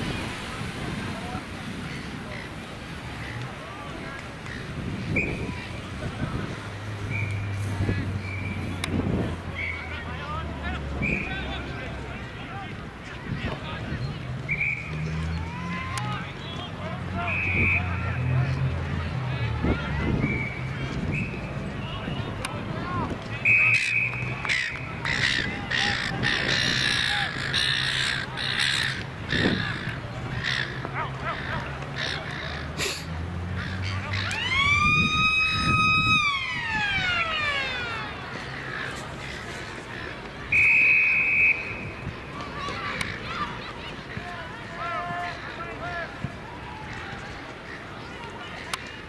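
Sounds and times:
distant shouts of players and crowd: 0:03.2 - 0:39.1, 0:40.0 - 0:49.0
whistle blown in a high note: 0:14.5 - 0:14.9, 0:17.3 - 0:17.9, 0:23.4 - 0:24.2, 0:40.5 - 0:42.0
loud harsh calling: 0:23.5 - 0:33.0.

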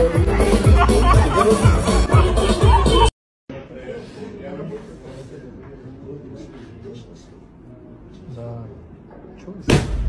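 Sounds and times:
loud blast with low thud: 0:09.7 - 0:10.0.

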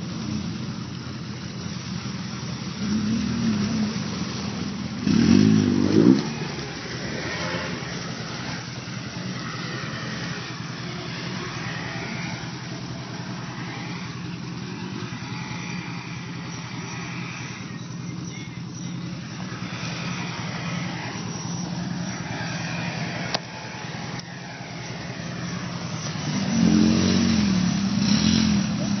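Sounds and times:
vehicle engine revving: 0:00.0 - 0:29.0.

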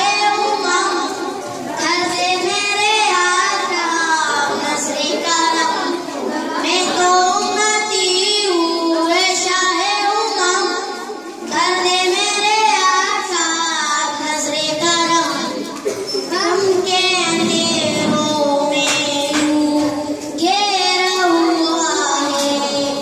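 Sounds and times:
boys singing into a microphone: 0:00.0 - 0:23.0.

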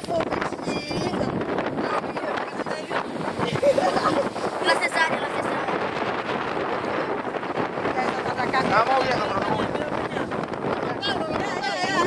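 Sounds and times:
voices talking: 0:00.0 - 0:12.0
wind buffeting microphone: 0:00.0 - 0:12.0.

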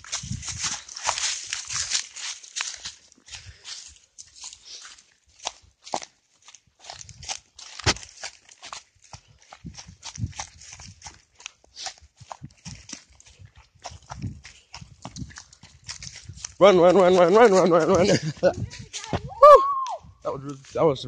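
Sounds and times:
footsteps crunching through dry grass: 0:00.0 - 0:21.0.

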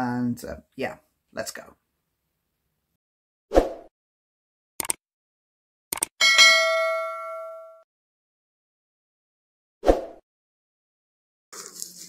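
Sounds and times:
mouse double click: 0:04.8 - 0:05.0
bright bell ding: 0:06.2 - 0:07.8.

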